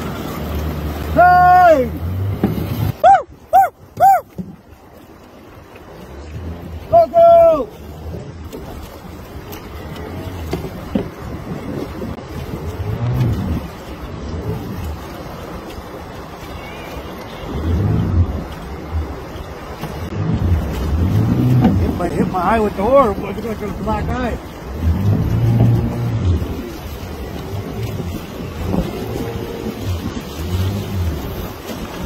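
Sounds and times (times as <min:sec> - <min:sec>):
water sloshing and splashing: 0:00.0 - 0:32.0
wind on microphone: 0:07.8 - 0:32.0.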